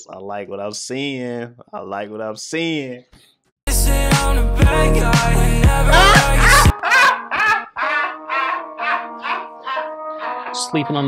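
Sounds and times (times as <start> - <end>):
bursts of loud laughter: 5.9 - 10.6.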